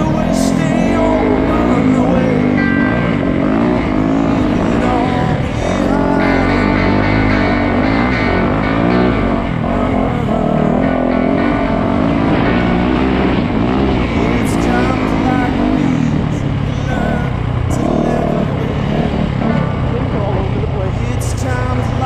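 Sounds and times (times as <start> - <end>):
dirt bike engines revving: 0.0 - 22.0.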